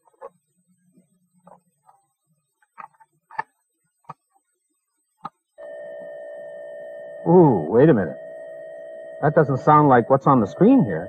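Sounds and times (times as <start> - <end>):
steady data tone from tape: 0.0 - 11.0.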